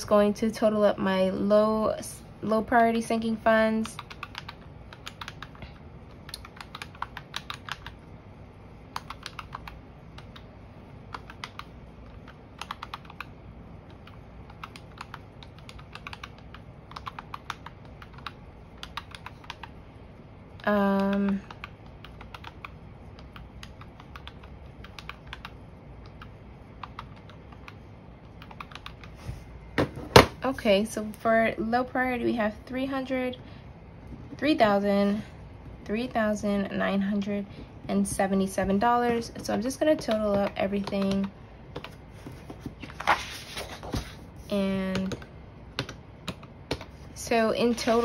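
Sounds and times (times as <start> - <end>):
calculator keys clicking: 3.8 - 5.6, 6.2 - 8.0, 8.9 - 10.5, 11.1 - 13.3, 13.9 - 19.7, 20.6 - 29.2.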